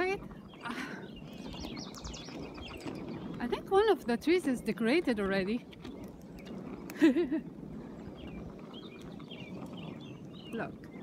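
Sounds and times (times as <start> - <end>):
small birds chirping: 0.0 - 7.0, 7.7 - 11.0
wind rumble: 0.0 - 11.0.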